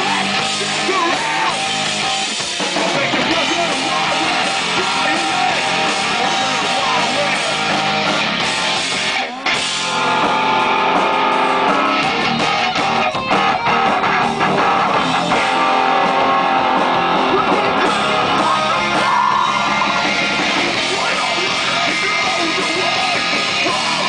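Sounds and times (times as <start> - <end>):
rock band playing: 0.0 - 24.0.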